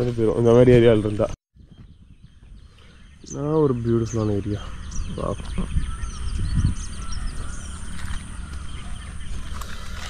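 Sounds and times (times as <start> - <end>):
low rumble on microphone: 0.0 - 10.0
small birds chirping: 0.0 - 10.0.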